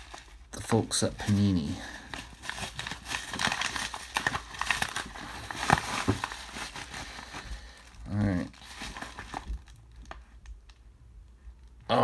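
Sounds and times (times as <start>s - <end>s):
bubble mailer crinkling: 0.0s - 10.9s.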